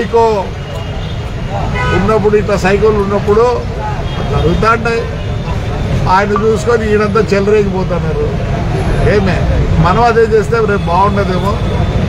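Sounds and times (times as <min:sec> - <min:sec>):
road traffic rumble: 0:00.0 - 0:12.0
man speaking: 0:06.1 - 0:08.4.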